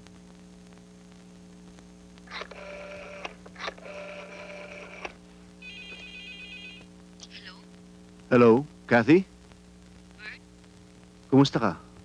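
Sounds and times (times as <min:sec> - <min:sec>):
steady telephone line tone: 0:02.3 - 0:07.0
warbling electronic phone ring: 0:02.5 - 0:06.9.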